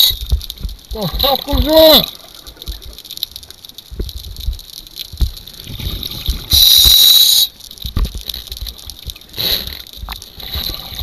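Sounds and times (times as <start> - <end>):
underwater knocks and bumps: 0.1 - 1.8, 2.4 - 3.0, 3.9 - 6.5, 7.8 - 9.3.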